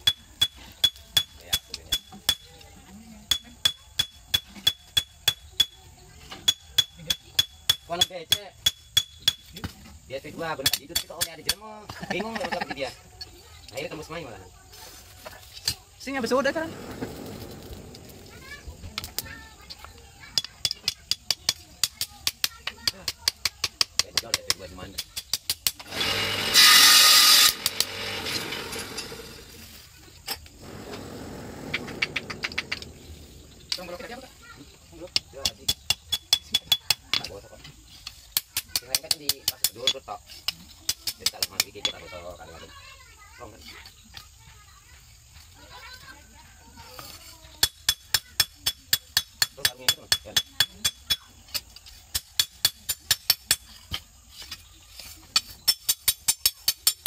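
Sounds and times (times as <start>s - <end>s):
loud burst of noise: 16.3s - 18.8s, 25.9s - 29.6s, 30.6s - 33.8s.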